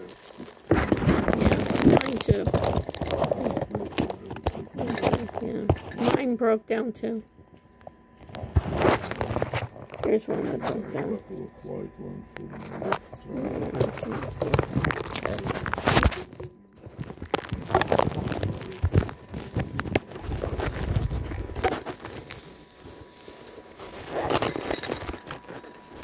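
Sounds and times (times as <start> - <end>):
rustling and crinkling handling noise: 0.0 - 6.5, 7.3 - 26.0.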